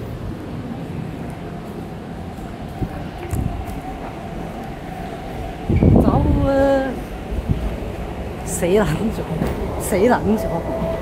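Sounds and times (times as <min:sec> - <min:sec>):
train low rumble: 0:00.0 - 0:11.0.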